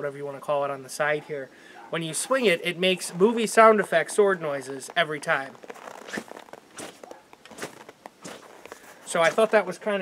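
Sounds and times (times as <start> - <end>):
sword whooshing through air: 6.1 - 8.5.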